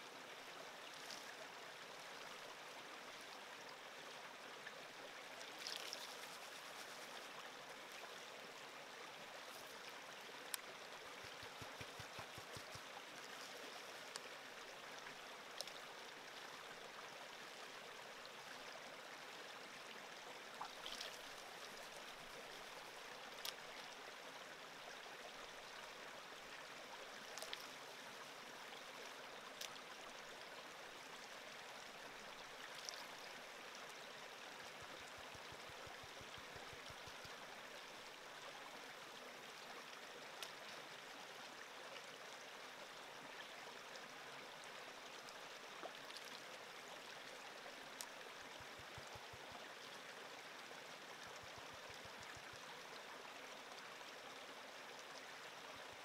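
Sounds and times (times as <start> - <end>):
creek water flowing: 0.0 - 56.0.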